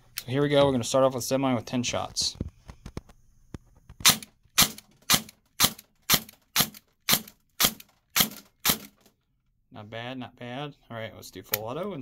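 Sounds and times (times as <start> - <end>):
airsoft gun single shots: 4.0 - 9.0.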